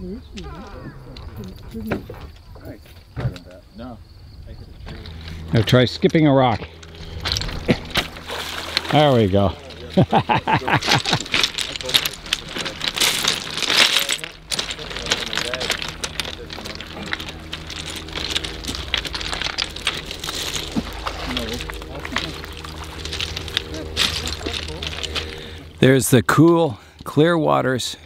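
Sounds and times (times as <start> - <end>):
pebbles clicking and crunching: 5.0 - 27.3
small waves washing: 8.2 - 9.4.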